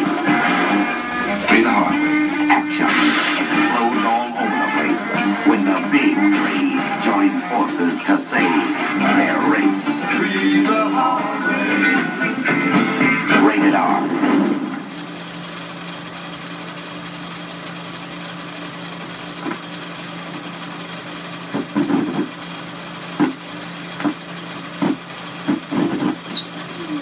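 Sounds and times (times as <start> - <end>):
trailer music: 0.0 - 15.0
film projector humming: 0.0 - 27.0
narrator speaking: 1.4 - 9.8, 13.3 - 14.2.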